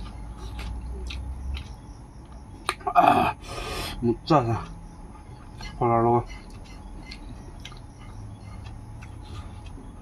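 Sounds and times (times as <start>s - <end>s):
chewing: 0.0s - 2.9s, 4.6s - 10.0s
low steady hum: 0.0s - 10.0s.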